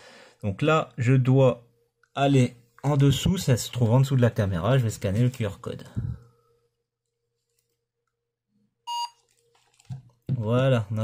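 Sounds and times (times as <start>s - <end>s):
short electronic beep: 8.9s - 9.2s.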